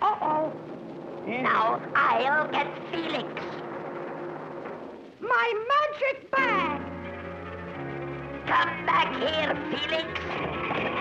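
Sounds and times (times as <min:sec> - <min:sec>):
soft background music: 0:06.3 - 0:11.0.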